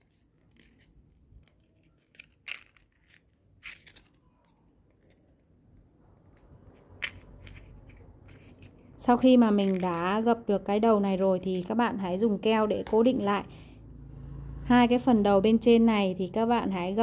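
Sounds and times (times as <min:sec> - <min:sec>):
paper rustling and crackling: 0:00.0 - 0:05.6, 0:06.3 - 0:10.3.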